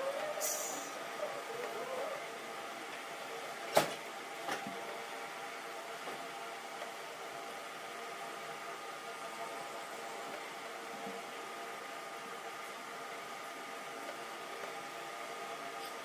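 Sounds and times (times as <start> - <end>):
faint constant hum: 0.0 - 16.0
steady whirring hiss: 0.0 - 16.0.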